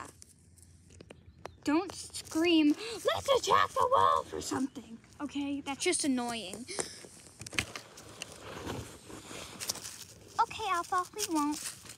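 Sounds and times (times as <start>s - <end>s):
rustling of dry leaves: 2.0s - 6.4s, 7.0s - 11.9s.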